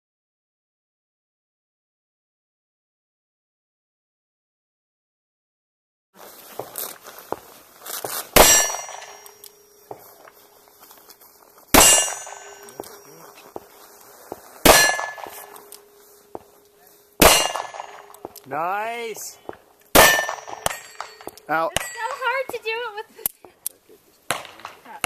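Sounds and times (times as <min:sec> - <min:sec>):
steel plate target clanging: 0:08.3 - 0:10.6, 0:11.7 - 0:13.8, 0:14.4 - 0:19.2, 0:19.9 - 0:22.7.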